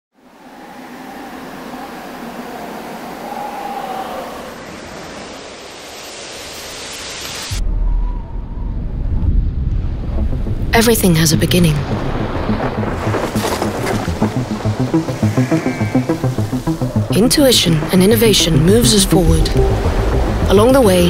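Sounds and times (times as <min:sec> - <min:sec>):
rush of wind-like noise: 0:00.2 - 0:10.2
deep rumble of thunder: 0:07.6 - 0:10.8, 0:11.6 - 0:14.8.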